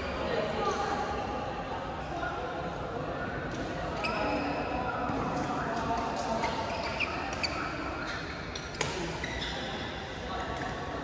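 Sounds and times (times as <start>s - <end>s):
chatter of voices in hall: 0.0s - 11.0s.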